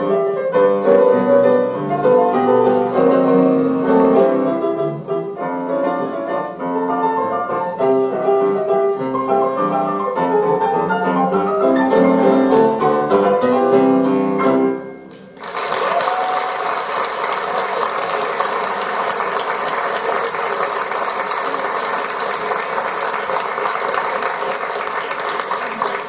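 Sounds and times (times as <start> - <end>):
piano notes: 0.0 - 15.4
audience applause: 15.3 - 26.0.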